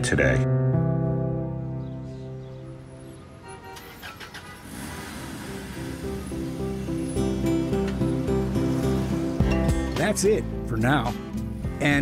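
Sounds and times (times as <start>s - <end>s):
street traffic rushing by: 1.7s - 11.8s.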